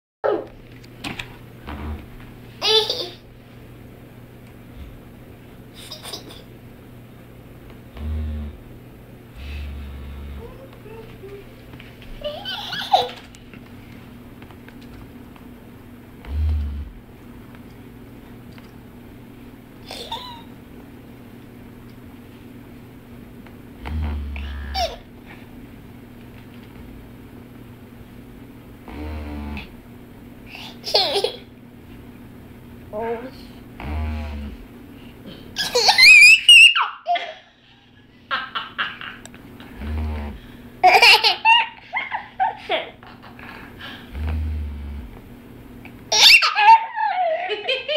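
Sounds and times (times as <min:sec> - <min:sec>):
massager buzzing: 0:01.1 - 0:36.9, 0:39.1 - 0:46.5
handheld massager buzzing: 0:01.6 - 0:02.2, 0:07.9 - 0:08.7, 0:09.3 - 0:11.3, 0:16.2 - 0:17.0, 0:23.8 - 0:25.0, 0:28.8 - 0:29.8, 0:33.8 - 0:34.7, 0:39.6 - 0:41.6, 0:44.1 - 0:45.3
toddler giggling: 0:02.6 - 0:03.2, 0:05.8 - 0:06.5, 0:12.2 - 0:13.2, 0:19.8 - 0:20.5, 0:24.8 - 0:25.0, 0:30.8 - 0:31.5, 0:35.6 - 0:37.5, 0:40.8 - 0:43.3, 0:46.2 - 0:47.9.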